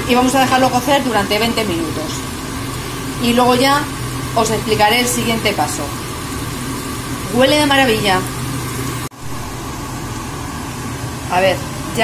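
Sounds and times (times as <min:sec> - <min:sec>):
fan whirring: 0:00.0 - 0:12.0.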